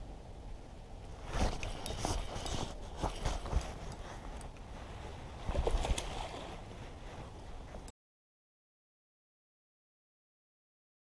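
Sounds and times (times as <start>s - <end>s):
low wind rumble: 0.0s - 7.9s.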